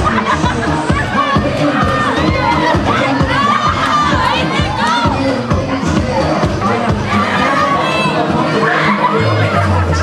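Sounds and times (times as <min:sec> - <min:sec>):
crowd shouting and cheering: 0:00.0 - 0:10.0
music with a steady beat: 0:00.0 - 0:10.0.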